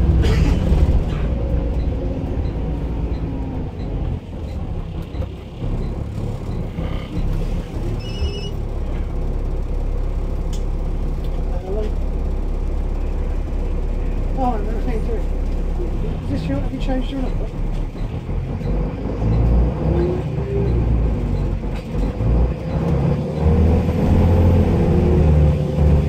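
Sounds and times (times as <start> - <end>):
bus engine rumble: 0.0 - 26.0
short electronic beeping: 8.0 - 8.6
passengers' voices: 13.2 - 18.0.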